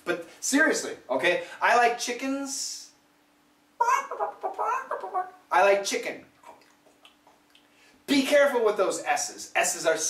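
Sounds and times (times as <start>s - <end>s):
man imitating chicken clucks: 3.8s - 5.5s.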